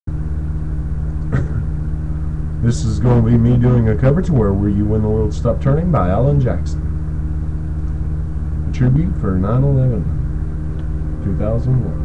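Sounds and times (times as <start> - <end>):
steady low hum: 0.0 - 12.0
man's short vocal sound: 1.3 - 1.7.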